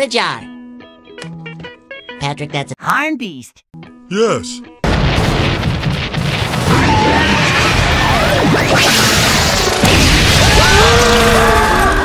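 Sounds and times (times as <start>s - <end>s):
music: 0.0s - 4.9s
loud crashing and booming: 4.8s - 12.0s.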